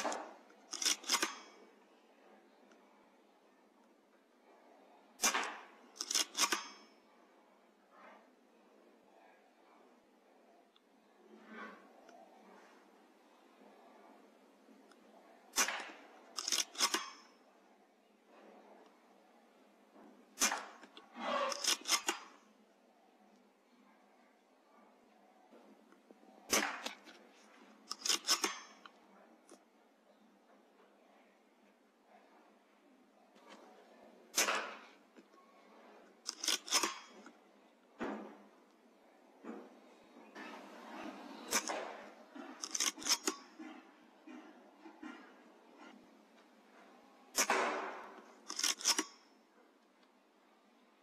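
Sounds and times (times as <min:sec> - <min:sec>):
mechanical clacks of rifle lever: 0:00.0 - 0:01.6, 0:05.2 - 0:06.7, 0:15.6 - 0:17.3, 0:20.4 - 0:22.3, 0:27.9 - 0:29.0, 0:36.2 - 0:37.4, 0:42.4 - 0:43.5, 0:47.4 - 0:49.2
rifle lever metallic clicks: 0:15.6 - 0:17.3, 0:27.9 - 0:29.0, 0:36.3 - 0:37.3, 0:42.6 - 0:43.5, 0:48.2 - 0:49.2.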